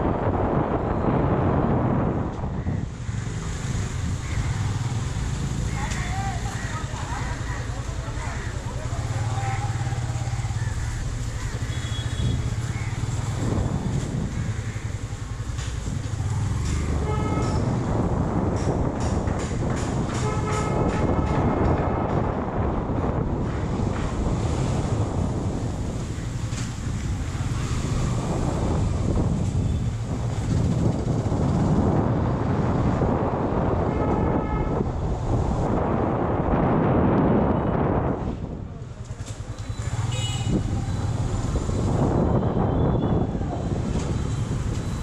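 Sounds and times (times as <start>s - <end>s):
wind rushing on microphone: 0.0s - 45.0s.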